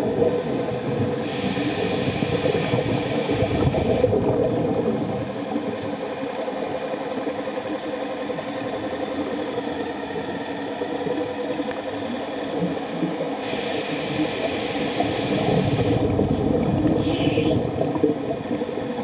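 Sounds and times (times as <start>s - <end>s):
water noise: 0.0s - 19.0s.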